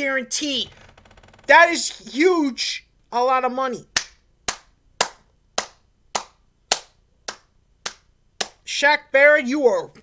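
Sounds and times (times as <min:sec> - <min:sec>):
hand clapping: 0:04.0 - 0:08.6.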